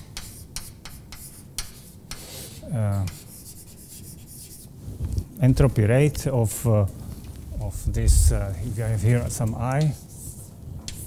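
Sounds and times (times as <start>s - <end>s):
chalk scratching on blackboard: 0.0s - 4.7s, 9.9s - 11.0s.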